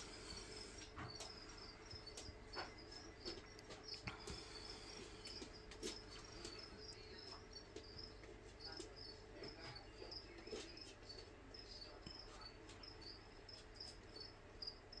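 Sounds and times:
cricket chirping: 0:00.0 - 0:15.0.

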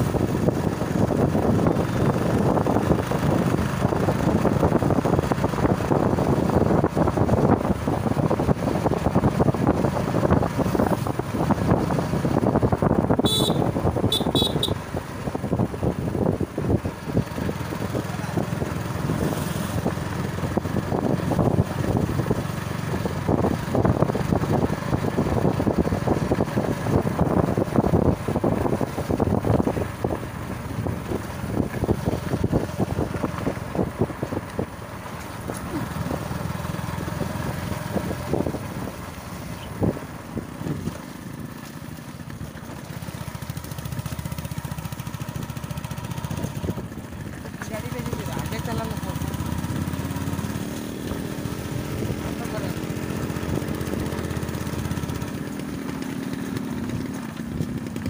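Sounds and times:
motorcycle engine running: 0:00.0 - 0:58.0
vehicle horn beeps: 0:13.2 - 0:14.8
wind buffeting microphone: 0:19.7 - 0:34.8.

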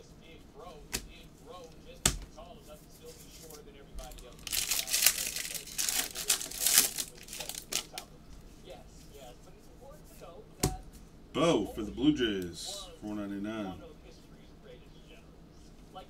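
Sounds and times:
foil pack crinkling and tearing: 0:04.0 - 0:08.1.

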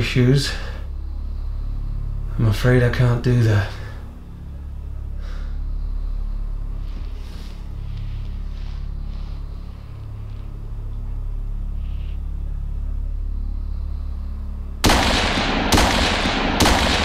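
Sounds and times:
low rumbling drone: 0:00.0 - 0:17.0
faint soft sounds: 0:03.6 - 0:14.8.

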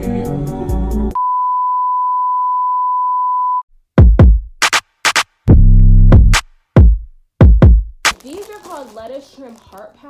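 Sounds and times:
background music: 0:00.0 - 0:01.2.

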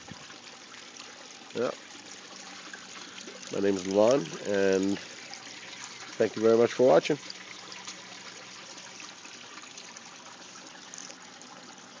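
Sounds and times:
water trickling: 0:00.0 - 0:12.0.

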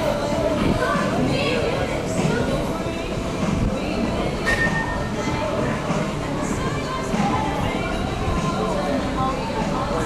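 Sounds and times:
background music: 0:00.0 - 0:10.0
people's voices: 0:00.0 - 0:10.0.

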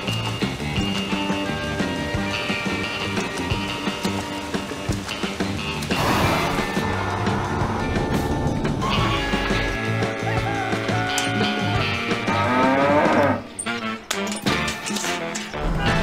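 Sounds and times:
background music: 0:00.0 - 0:16.0
cow mooing: 0:09.9 - 0:14.0.

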